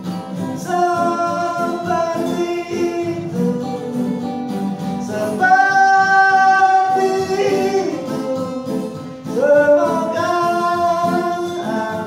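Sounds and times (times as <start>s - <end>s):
acoustic guitars: 0.0s - 12.0s
man singing long notes: 0.6s - 4.3s, 5.0s - 12.0s.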